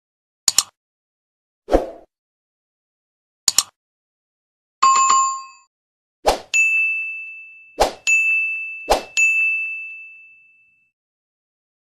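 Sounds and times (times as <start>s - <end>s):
bright bell-like ding: 6.6s - 10.9s.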